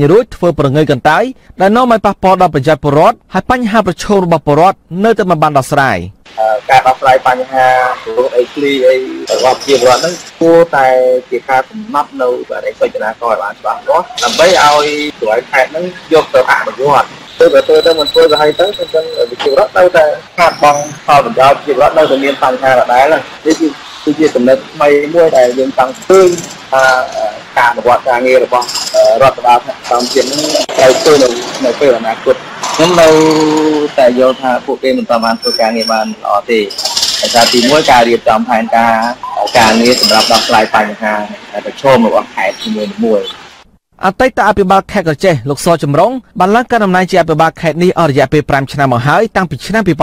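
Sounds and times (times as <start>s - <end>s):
person narrating: 0.0s - 43.4s
person talking: 0.0s - 43.4s, 44.0s - 50.0s.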